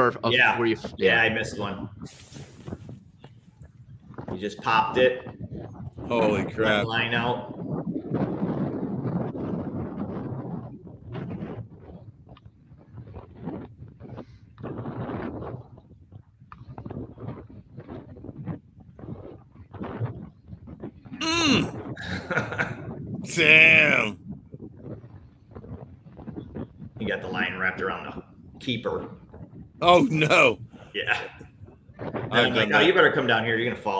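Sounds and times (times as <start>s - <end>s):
quiet voices: 21.2s - 24.2s, 29.8s - 31.4s, 32.3s - 33.9s
men shouting excitedly: 23.3s - 24.2s, 29.8s - 31.2s.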